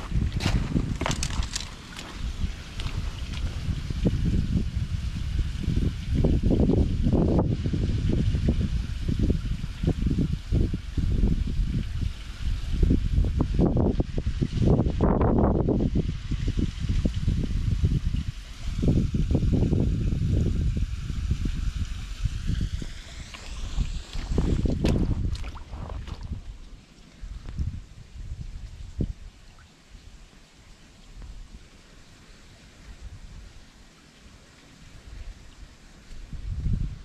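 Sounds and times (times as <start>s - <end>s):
wind rumble on microphone: 0.0s - 30.2s, 32.8s - 33.7s, 34.8s - 37.0s
water trickling over stones: 0.0s - 37.0s.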